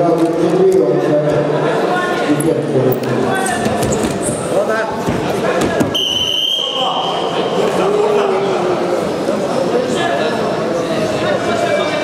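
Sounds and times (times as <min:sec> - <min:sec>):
voices in a hall: 0:00.0 - 0:12.0
referee's whistle: 0:05.9 - 0:07.5.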